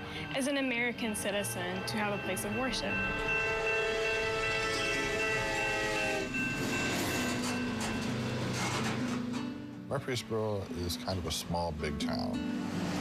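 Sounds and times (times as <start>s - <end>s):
train horn chord: 0.0s - 9.7s
train rumbling along rails: 0.6s - 9.6s.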